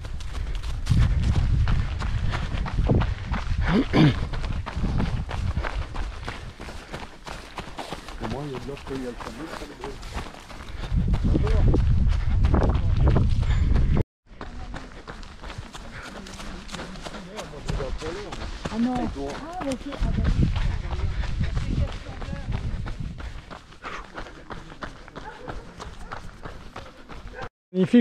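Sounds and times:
running footsteps on dirt path: 0:00.0 - 0:28.0.

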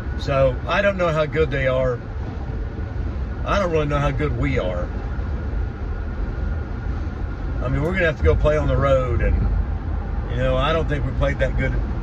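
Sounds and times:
vehicle road and engine rumble: 0:00.0 - 0:12.0.

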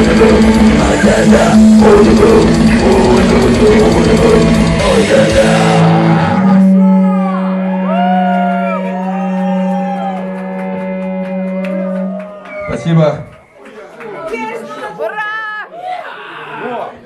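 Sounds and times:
distorted guitar note ringing: 0:00.0 - 0:13.3
metal band playing: 0:00.0 - 0:13.3
guitar feedback squeals: 0:04.6 - 0:13.4.

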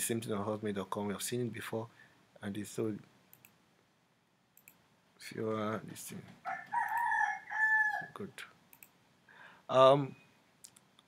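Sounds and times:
rooster crowing: 0:06.4 - 0:08.2.

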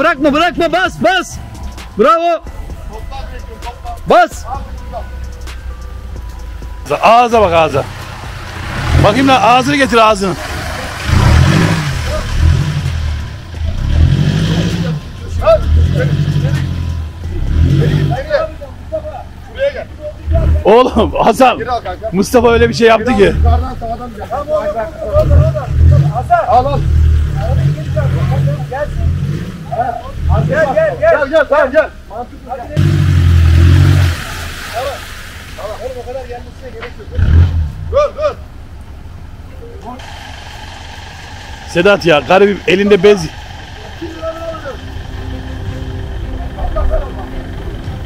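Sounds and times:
off-road engine revving: 0:06.8 - 0:48.0.

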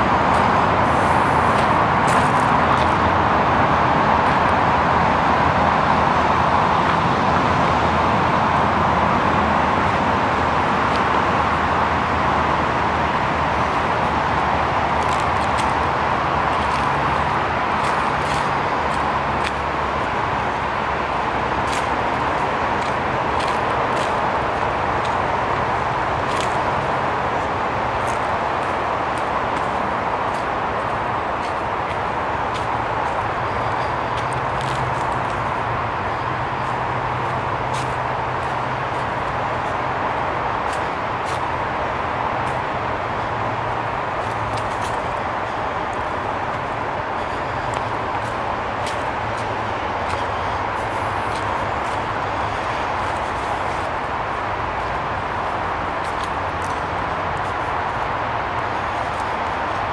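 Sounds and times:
footsteps on dirt trail: 0:00.0 - 0:03.0, 0:13.7 - 0:59.9
distant road traffic: 0:00.0 - 0:59.9.

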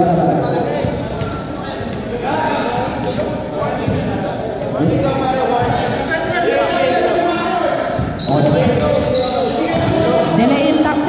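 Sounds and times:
men talking and calling: 0:00.0 - 0:11.0.

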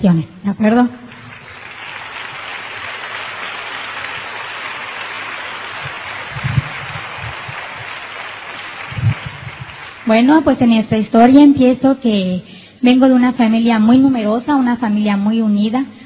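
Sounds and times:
audience applauding: 0:01.1 - 0:10.4.

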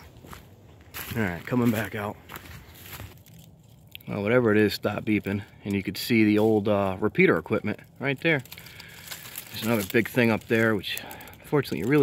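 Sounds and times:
footsteps through dry leaves: 0:00.0 - 0:04.0, 0:08.2 - 0:12.0.

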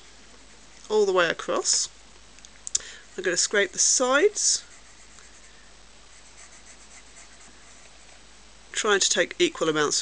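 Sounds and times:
pencil scratching on cane: 0:03.2 - 0:05.6, 0:06.2 - 0:08.2.

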